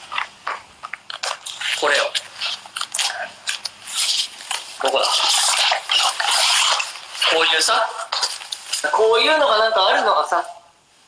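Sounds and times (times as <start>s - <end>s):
packaging crinkling: 0.1s - 8.9s.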